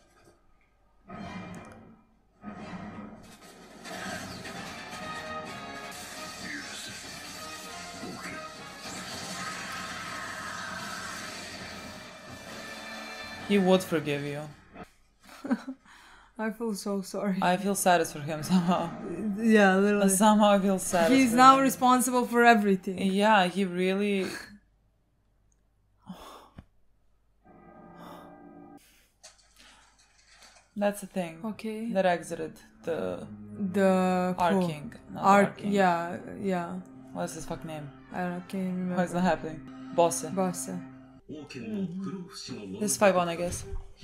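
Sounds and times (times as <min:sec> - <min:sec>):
noisy crash: 0:02.4 - 0:13.5
sustained background music: 0:02.5 - 0:10.3, 0:11.2 - 0:14.8, 0:17.3 - 0:24.0, 0:31.5 - 0:44.0
woman breathing: 0:15.8 - 0:16.4, 0:26.0 - 0:26.8.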